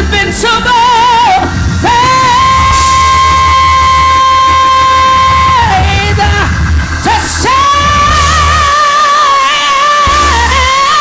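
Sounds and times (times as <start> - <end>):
low bass accompaniment: 0.0 - 11.0
woman singing gospel: 0.0 - 11.0.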